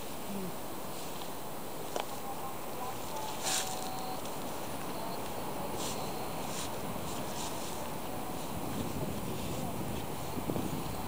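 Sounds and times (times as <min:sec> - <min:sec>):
wind blowing on microphone: 0:03.1 - 0:11.0.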